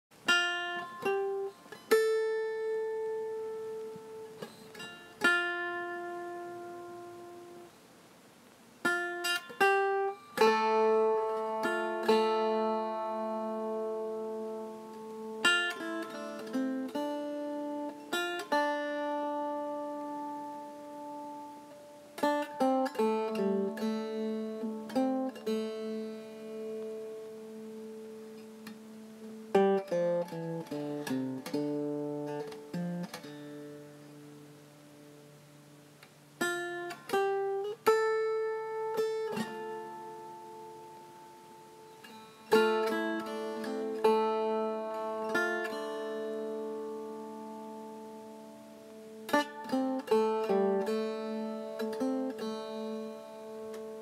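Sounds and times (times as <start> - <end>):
slow acoustic guitar music: 0.1 - 8.0, 8.8 - 54.0.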